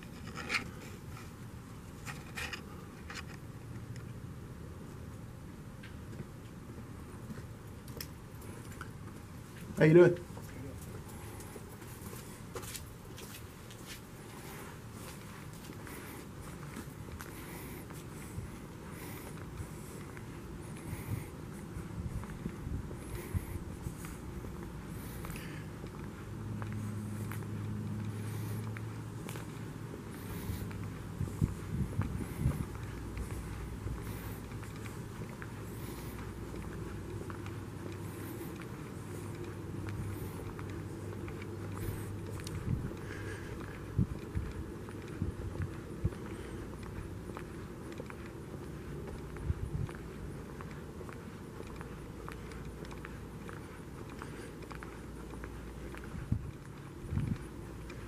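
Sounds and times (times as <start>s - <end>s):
low background noise: 0.0s - 58.0s
soft footsteps: 0.0s - 58.0s
steady low hum: 0.0s - 58.0s.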